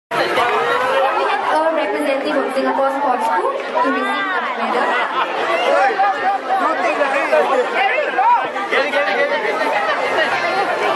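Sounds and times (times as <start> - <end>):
crowd chattering: 0.1 - 10.9.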